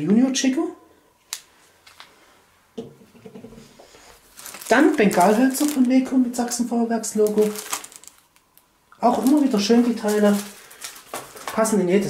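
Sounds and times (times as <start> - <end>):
packets rustling and knocking: 3.8 - 6.1, 7.2 - 8.3, 9.0 - 11.7.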